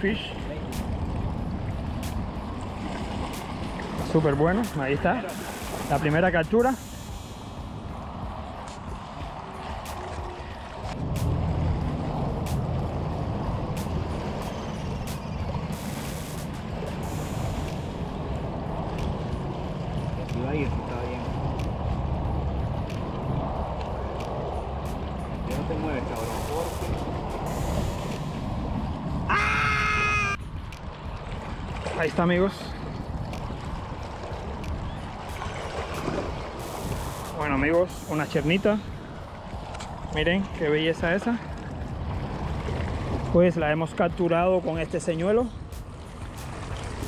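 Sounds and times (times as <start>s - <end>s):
wind rumbling on microphone: 0.0s - 47.0s.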